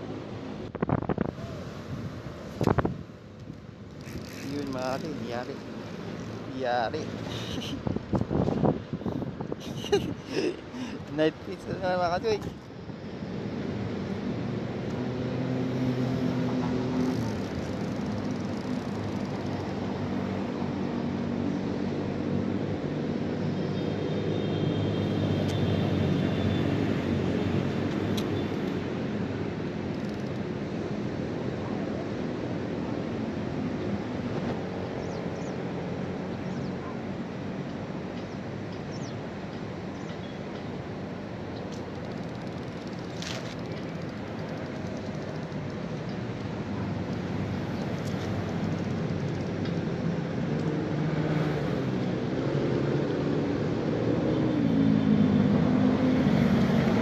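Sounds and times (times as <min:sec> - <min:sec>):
passing motor engine drone: 0:50.4 - 0:57.0.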